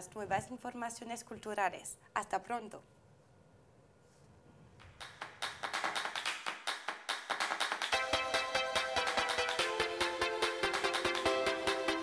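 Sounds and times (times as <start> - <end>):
sharp claps: 4.8 - 9.8, 10.6 - 11.3.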